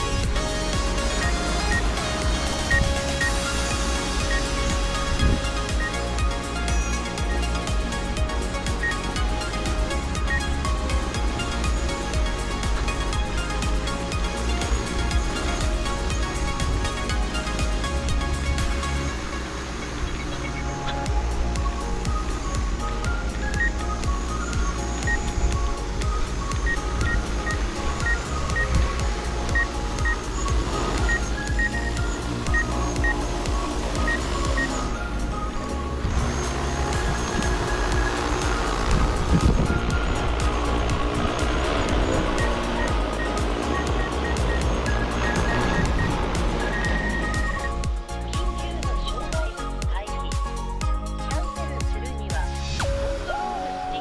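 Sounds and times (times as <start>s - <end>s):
steady low hum: 0.0s - 49.1s
music with high note melody: 0.0s - 54.0s.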